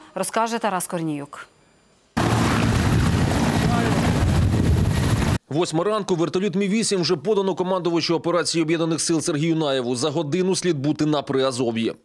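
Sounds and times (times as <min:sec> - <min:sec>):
helicopter engines and rotor: 0:02.2 - 0:05.4.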